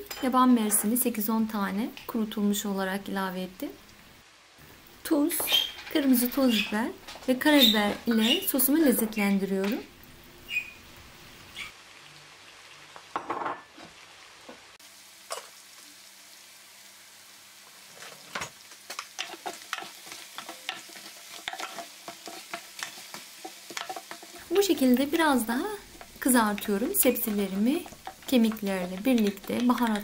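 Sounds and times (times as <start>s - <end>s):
bones and vegetables sizzling: 0.0s - 30.0s
wooden spoon scraping a pan: 5.3s - 8.8s, 18.0s - 30.0s.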